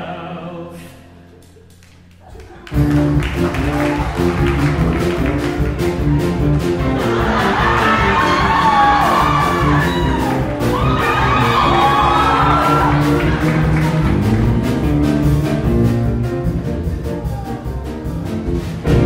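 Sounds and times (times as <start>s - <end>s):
piano chords: 0.0s - 19.0s
live band playing: 2.6s - 19.0s
sliding melody line: 2.8s - 19.0s.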